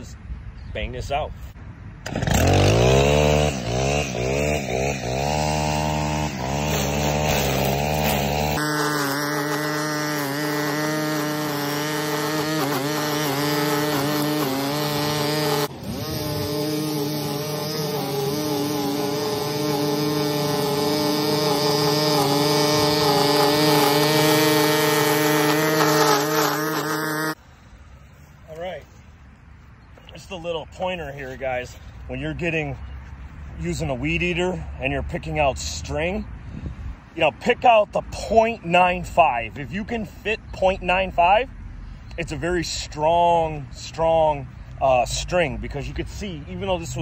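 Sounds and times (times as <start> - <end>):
string trimmer engine revving: 2.0 - 27.4
trimmer line cutting grass: 2.0 - 27.4.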